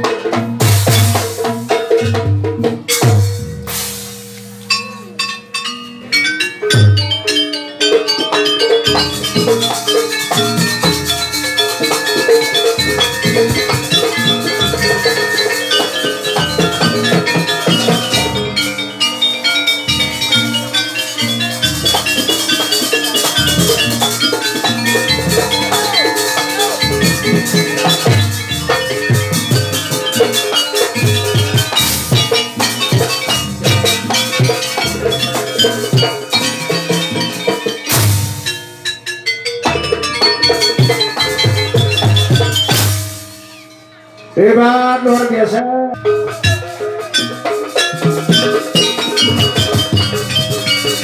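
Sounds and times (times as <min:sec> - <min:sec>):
hand drums beating: 0:00.0 - 0:43.8, 0:46.0 - 0:51.0
ringing metallophones: 0:00.0 - 0:51.0
gongs: 0:02.8 - 0:45.3.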